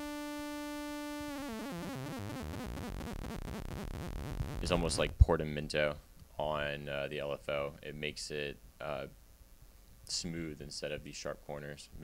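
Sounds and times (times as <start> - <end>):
synthesizer sawtooth note wobbling: 0.0 - 5.0.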